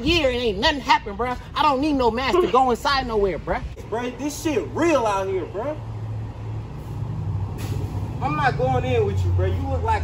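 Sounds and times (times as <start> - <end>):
short hiss: 7.6 - 8.1.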